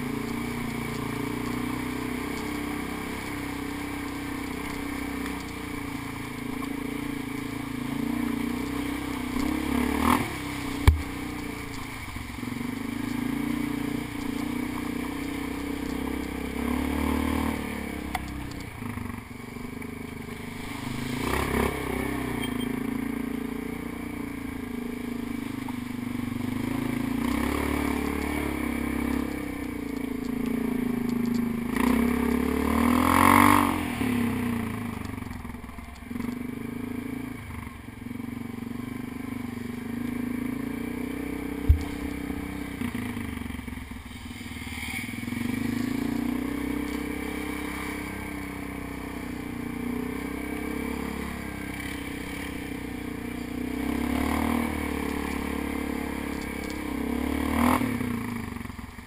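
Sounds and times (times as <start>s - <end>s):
atv engine revving: 0.0s - 59.0s.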